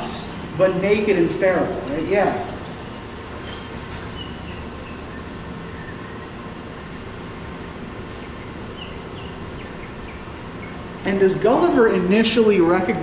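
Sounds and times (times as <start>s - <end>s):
low room rumble: 0.0s - 13.0s.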